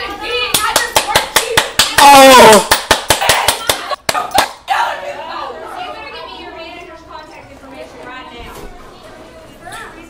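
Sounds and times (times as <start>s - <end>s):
person clapping hands: 0.6s - 4.6s
person yelling: 2.0s - 2.7s.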